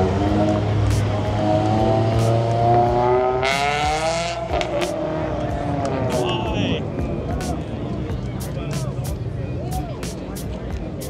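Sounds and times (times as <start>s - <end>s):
car engine accelerating: 0.0s - 9.2s.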